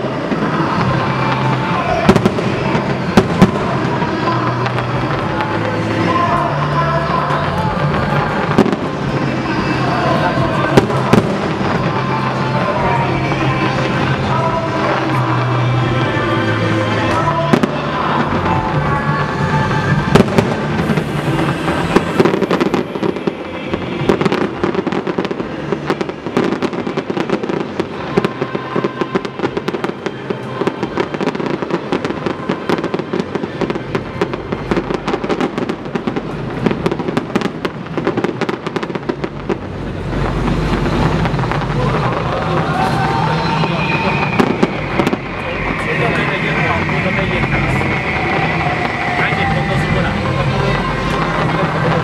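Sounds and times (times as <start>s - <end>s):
distant fireworks bangs and crackling: 0.0s - 52.0s.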